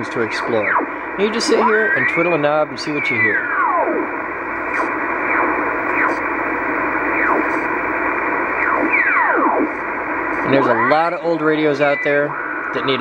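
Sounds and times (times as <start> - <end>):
radio speaker hiss: 0.0 - 3.5, 4.6 - 13.0.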